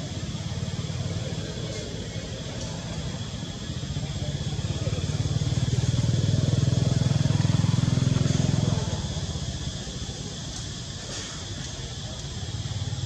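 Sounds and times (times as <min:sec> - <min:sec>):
vehicle engine passing by: 0:04.0 - 0:09.5.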